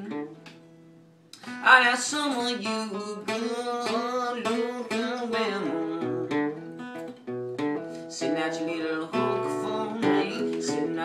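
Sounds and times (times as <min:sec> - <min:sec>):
acoustic guitar blues riff: 0:00.0 - 0:11.0
man singing: 0:01.4 - 0:06.6, 0:08.1 - 0:11.0.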